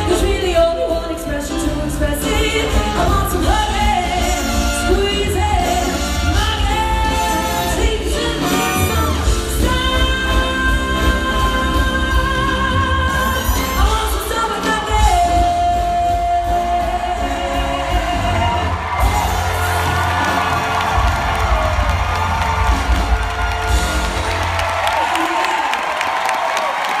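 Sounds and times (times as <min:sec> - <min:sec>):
live big band with woman singing: 0:00.0 - 0:24.6
crowd cheering and whooping: 0:18.2 - 0:27.0.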